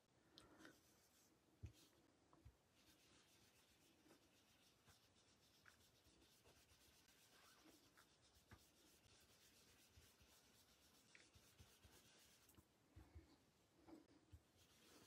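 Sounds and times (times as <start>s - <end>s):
foam brush rubbing on cardstock: 2.7s - 12.6s, 14.5s - 15.0s.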